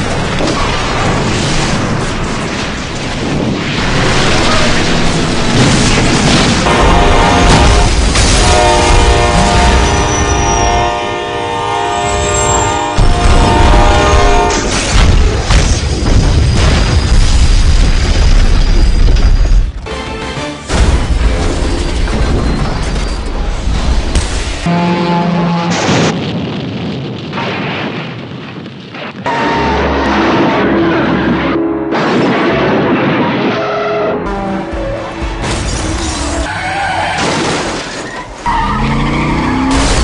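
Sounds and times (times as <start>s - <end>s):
car explosion blast: 0.0s - 10.1s, 25.7s - 33.7s, 39.5s - 40.0s
fire and debris noise: 0.0s - 40.0s
locomotive air horn blaring: 6.6s - 14.7s, 24.6s - 25.9s, 29.3s - 32.1s, 33.6s - 35.6s.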